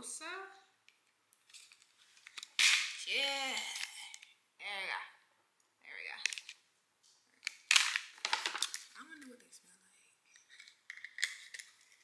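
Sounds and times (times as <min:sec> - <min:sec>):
card clicks and rustling: 0:01.4 - 0:02.9, 0:07.4 - 0:09.3.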